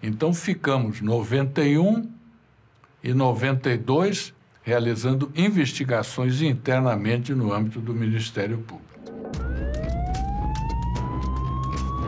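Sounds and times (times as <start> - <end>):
siren-like tone rising in pitch: 8.9 - 12.0.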